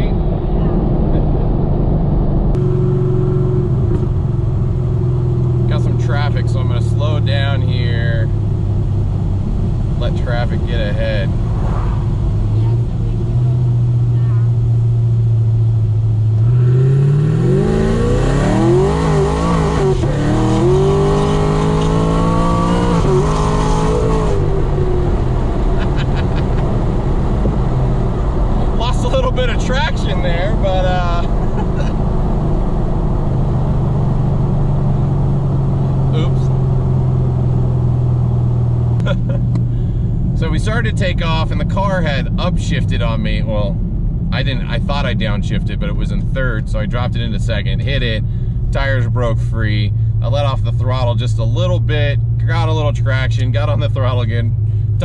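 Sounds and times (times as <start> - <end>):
car engine revving from inside cabin: 16.3 - 39.8.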